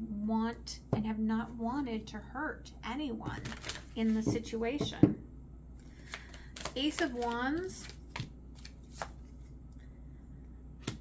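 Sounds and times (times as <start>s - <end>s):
faint card handling: 5.8s - 9.6s
cards snapping: 6.0s - 9.2s.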